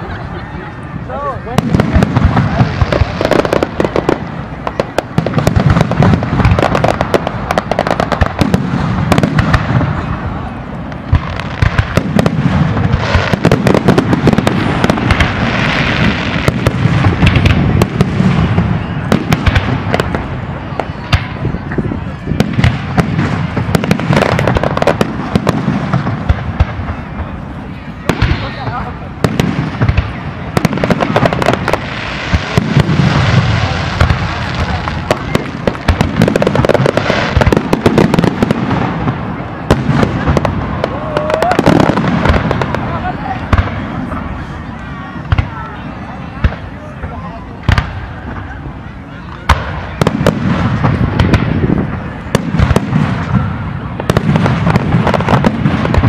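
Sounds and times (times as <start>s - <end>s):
crowd voices: 0.0s - 56.0s
fireworks bangs and crackles: 0.0s - 56.0s.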